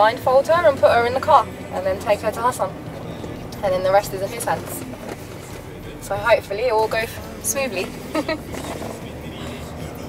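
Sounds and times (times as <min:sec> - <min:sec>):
car engine and tyres hum: 0:00.0 - 0:10.0
woman laughing: 0:08.0 - 0:08.7.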